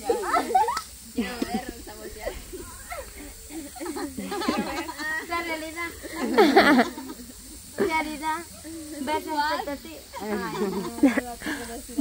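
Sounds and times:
faint high hiss: 0.0s - 12.0s
women chattering: 0.0s - 12.0s.

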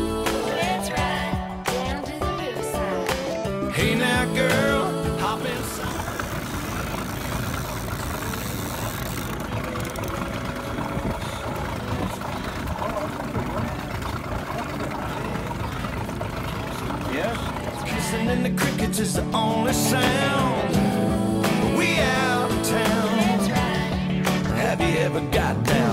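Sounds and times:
outboard motor running: 0.0s - 25.9s
wind and water rushing: 3.8s - 18.2s.

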